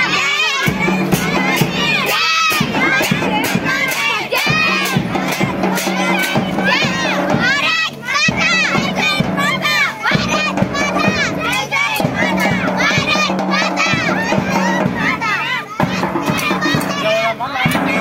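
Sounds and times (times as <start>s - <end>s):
children shouting slogans: 0.0s - 18.0s
hand cymbals clashing: 0.1s - 18.0s.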